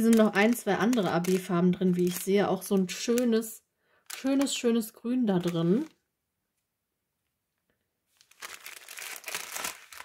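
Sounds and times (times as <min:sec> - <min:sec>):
plastic packaging crinkling: 0:00.0 - 0:05.9, 0:08.1 - 0:10.0.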